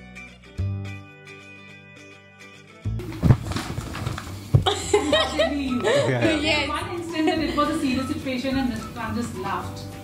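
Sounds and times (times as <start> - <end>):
paper rustling: 3.0 - 4.7
dull handling thumps: 3.0 - 4.8.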